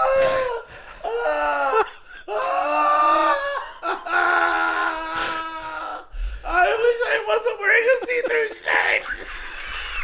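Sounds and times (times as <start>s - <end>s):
man laughing hysterically: 1.2s - 5.1s, 7.7s - 10.0s.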